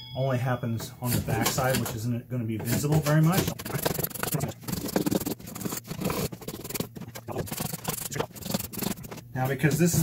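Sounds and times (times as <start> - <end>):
sandpaper rasping on wood: 2.8 - 9.2.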